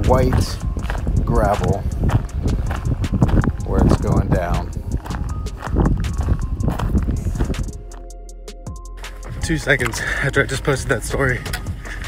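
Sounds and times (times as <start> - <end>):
running footsteps on gravel: 0.0 - 8.1.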